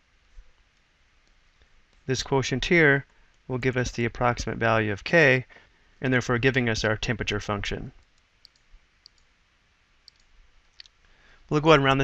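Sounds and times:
faint computer mouse clicks: 0:08.0 - 0:09.3, 0:10.0 - 0:11.0.

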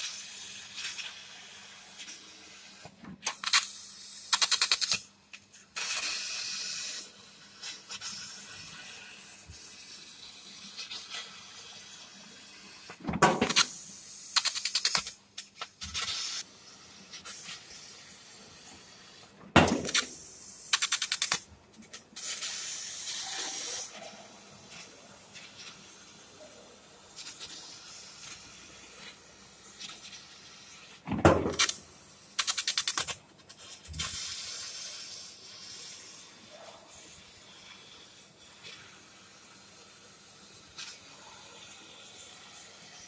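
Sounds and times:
laser cutter gas jet hissing: 0:00.0 - 0:43.0.

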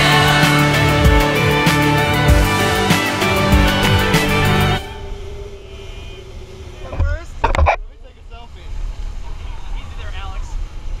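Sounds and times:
boat engine rumble: 0:00.0 - 0:11.0.

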